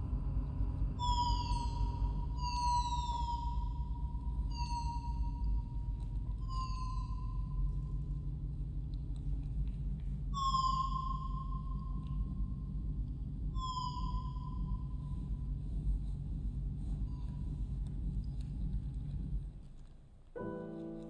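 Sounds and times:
low rumble: 0.0 - 19.9
steady high electronic tone: 6.4 - 8.0.

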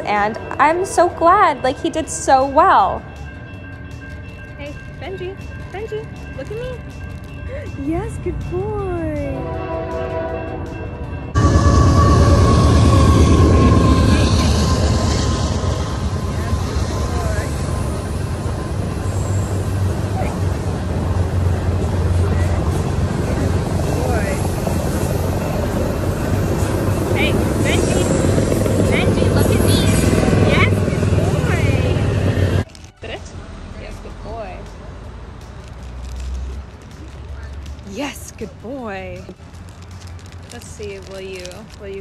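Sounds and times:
passing train rumble: 0.0 - 42.0.

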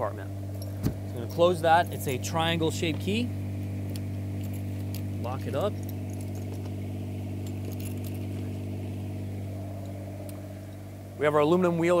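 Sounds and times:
engine idling: 0.0 - 12.0
keys jingling: 4.3 - 8.6.

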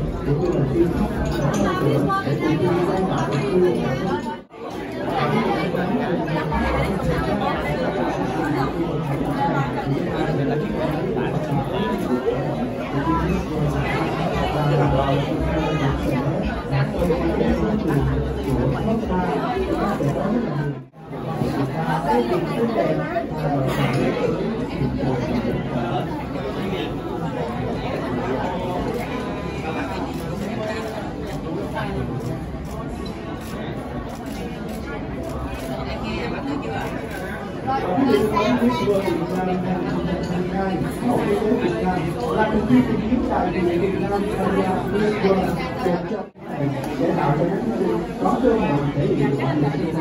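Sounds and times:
crowd chatter in large hall: 0.0 - 50.0.

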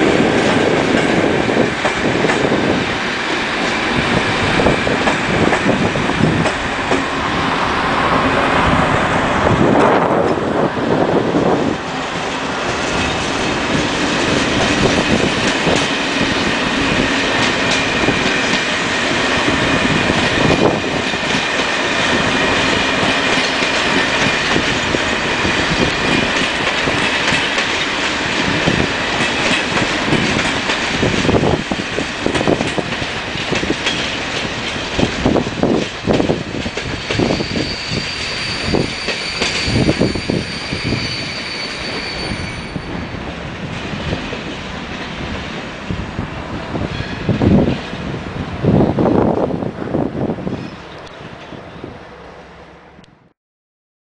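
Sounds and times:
train wheels clacking over rail joints: 0.1 - 7.2, 12.2 - 42.2
train wheels squealing: 36.8 - 43.2, 50.5 - 51.9.

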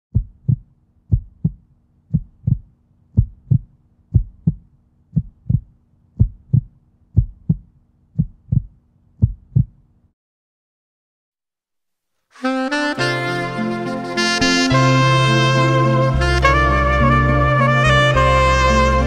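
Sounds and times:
heartbeat-like low thumps: 0.1 - 9.8.

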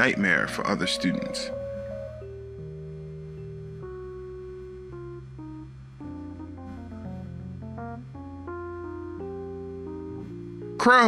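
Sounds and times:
slow melody over low bass: 0.0 - 11.0.

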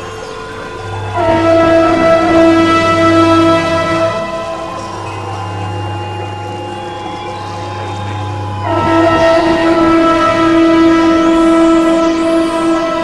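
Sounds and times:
low hum: 0.0 - 13.0
sustained synth chord: 0.0 - 13.0
synthesizer drone: 0.0 - 13.0.

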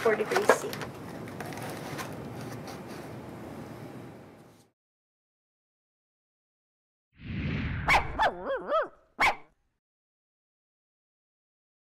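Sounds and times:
dog whining: 8.2 - 8.9
dog barking: 8.2 - 9.4.

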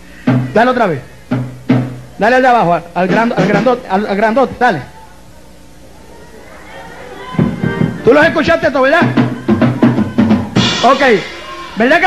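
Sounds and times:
drums struck: 0.2 - 2.2, 3.0 - 3.9, 7.3 - 12.0.

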